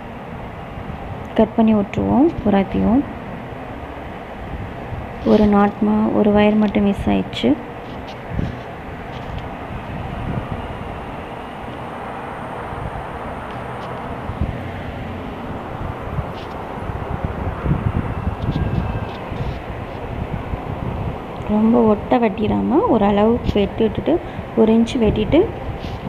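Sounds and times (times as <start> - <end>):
background hum and hiss: 0.0 - 26.0.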